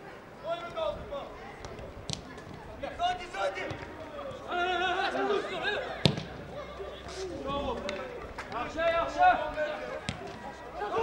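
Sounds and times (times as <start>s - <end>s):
footballers shouting: 0.0s - 11.0s.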